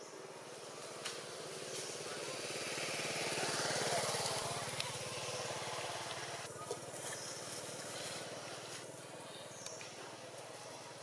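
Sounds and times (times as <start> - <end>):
small engine running: 1.3 - 9.2.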